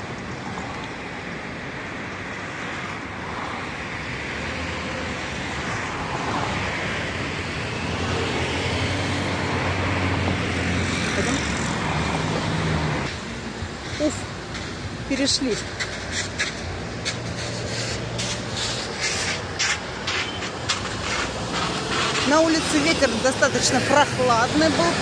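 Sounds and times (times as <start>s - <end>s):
cars driving past: 0.0s - 25.0s
vehicle engine hum passing: 2.6s - 25.0s.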